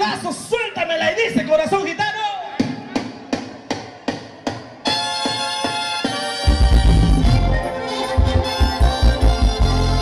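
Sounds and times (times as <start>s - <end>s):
band playing sustained notes: 5.0s - 10.0s.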